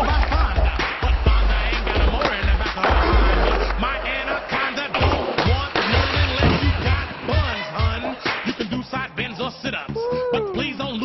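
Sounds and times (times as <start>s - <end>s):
skateboard wheels rolling: 0.0s - 9.3s
music with singing and heavy bass: 0.0s - 11.0s
skateboard clacks and knocks: 1.8s - 3.8s, 4.9s - 7.0s.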